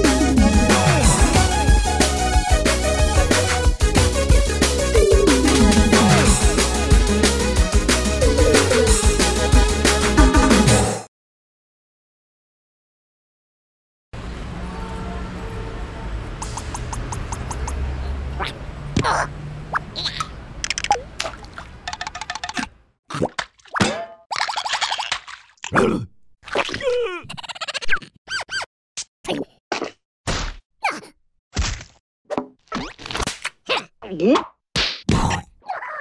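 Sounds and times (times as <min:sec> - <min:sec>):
comic sound effects: 0:04.7 - 0:07.0
cartoon vocal squeals and grunts: 0:18.4 - 0:19.3, 0:25.7 - 0:28.6, 0:30.8 - 0:31.1, 0:33.7 - 0:34.5, 0:35.6 - 0:36.0.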